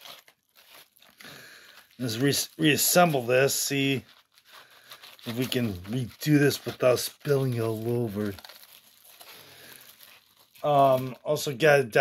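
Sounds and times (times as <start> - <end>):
foil wrapper crinkling: 0.0 - 12.0.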